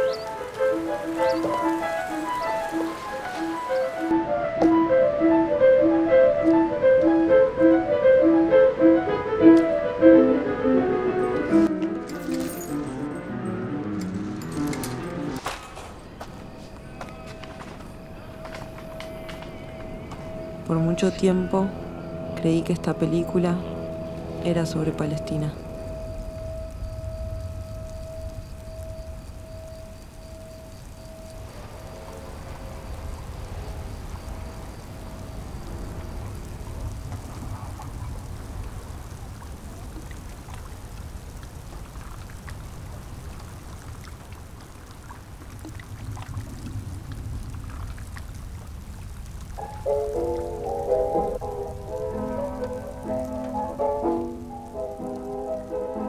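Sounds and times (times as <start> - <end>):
held musical tone: 0.0 - 15.4, 16.3 - 31.8
faint patter of rain: 0.0 - 56.0
low rumbling ambience: 11.5 - 41.7, 42.9 - 55.3.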